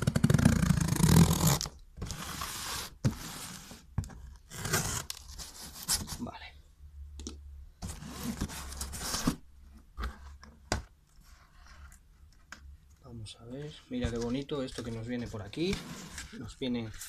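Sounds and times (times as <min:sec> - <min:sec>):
packing tape ripping off: 0:00.0 - 0:02.2
knife cutting packing tape: 0:00.1 - 0:02.6, 0:04.5 - 0:05.2.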